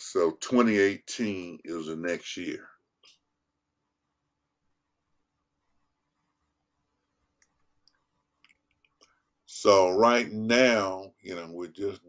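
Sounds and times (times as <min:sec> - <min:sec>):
faint clicks: 0:07.3 - 0:09.3.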